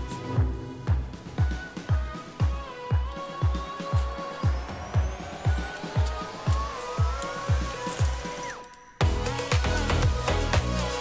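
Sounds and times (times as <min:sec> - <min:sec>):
steady kick drum: 0:00.0 - 0:08.2
rising pitch sweep: 0:00.0 - 0:10.4
electronic dance music: 0:00.0 - 0:11.0.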